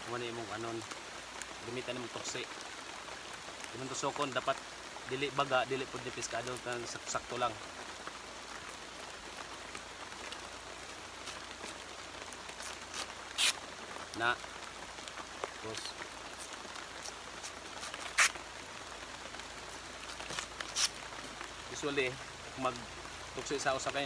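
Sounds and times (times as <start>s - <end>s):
steady background hiss: 0.0s - 24.0s
knife scraping fibrous stalk: 12.6s - 13.6s, 16.4s - 18.4s, 20.3s - 21.0s.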